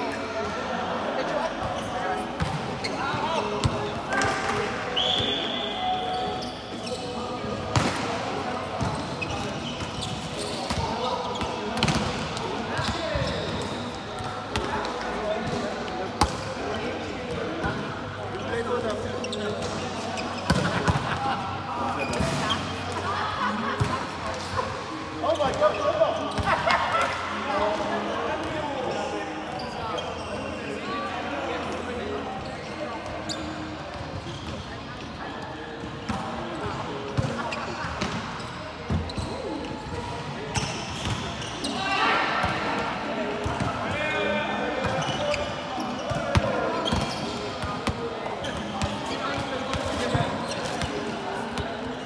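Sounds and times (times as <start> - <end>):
players calling and chatting: 0.0 - 52.0.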